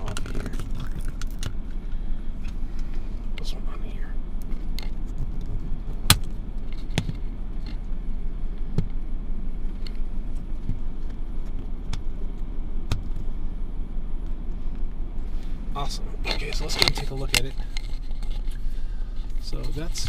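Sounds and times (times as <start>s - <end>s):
low rumble inside car: 0.0s - 20.0s.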